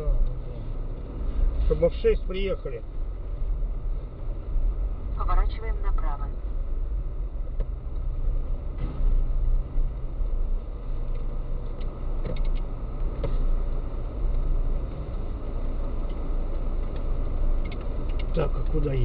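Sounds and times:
car engine hum: 0:00.0 - 0:19.0.

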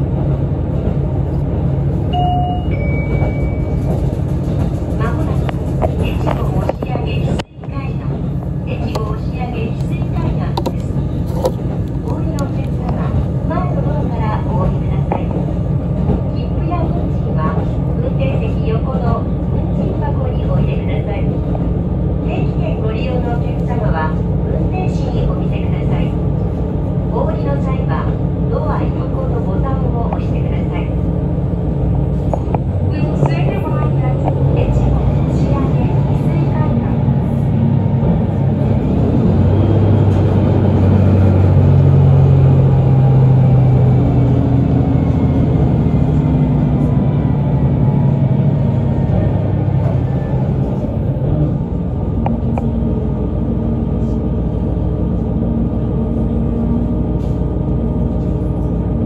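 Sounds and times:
railcar engine and wheels rumbling: 0:00.0 - 0:59.0.

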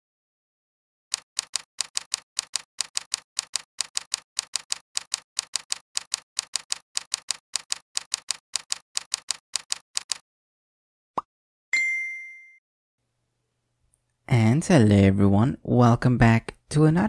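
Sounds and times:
keystroke clicks: 0:01.1 - 0:10.2.

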